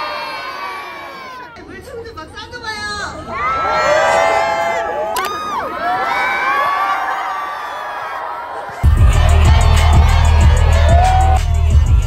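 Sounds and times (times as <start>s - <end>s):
crowd screaming and cheering: 0.0s - 1.6s, 3.2s - 12.0s.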